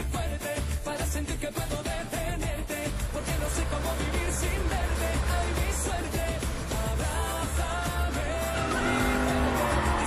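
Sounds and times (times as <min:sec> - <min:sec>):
pop backing music: 0:00.0 - 0:10.0
car engine revving: 0:02.7 - 0:10.0.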